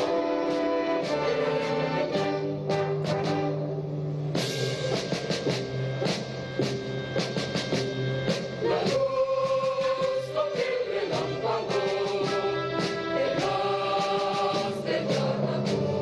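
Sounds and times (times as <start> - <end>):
orchestra brass chords: 0.0 - 8.9
timpani and drum strokes: 0.0 - 16.0.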